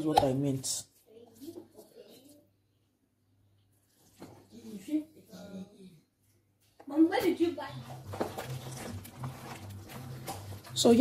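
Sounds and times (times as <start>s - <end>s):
wooden spoon stirring pot: 7.7s - 11.0s.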